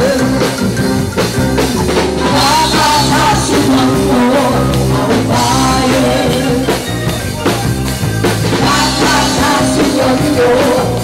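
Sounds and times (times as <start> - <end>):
upbeat pop song with singing: 0.0 - 0.9, 2.2 - 11.0.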